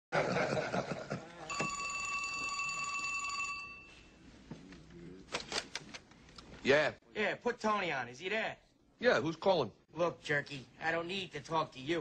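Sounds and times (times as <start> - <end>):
men laughing and talking: 0.2 - 1.4
telephone ringing: 1.5 - 4.2.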